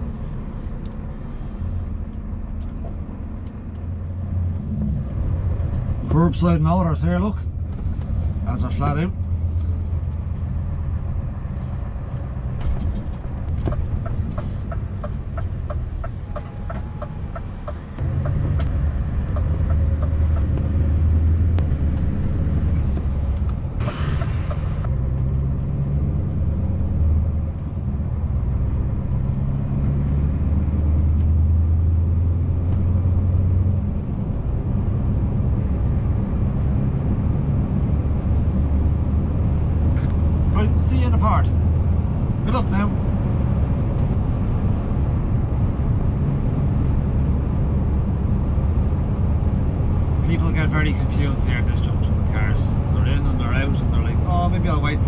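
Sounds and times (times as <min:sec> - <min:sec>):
diesel truck engine under load: 0:07.4 - 0:55.0.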